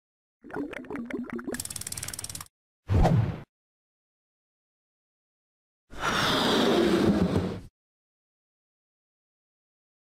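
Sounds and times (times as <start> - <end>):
rapid ratchet-like clicking: 1.6 - 2.5.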